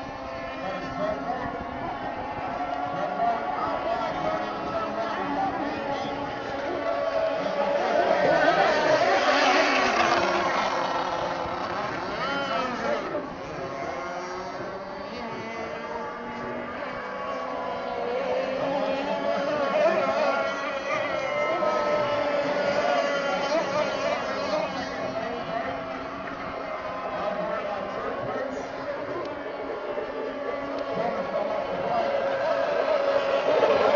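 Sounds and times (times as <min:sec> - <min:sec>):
racing boat motors whining: 0:00.0 - 0:33.9.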